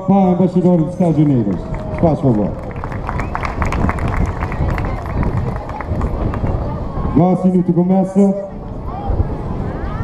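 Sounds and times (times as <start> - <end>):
scattered applause: 0.5 - 7.1.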